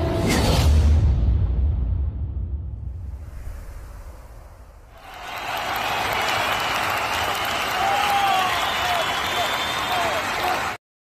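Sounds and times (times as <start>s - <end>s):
crowd applause: 4.9s - 10.8s.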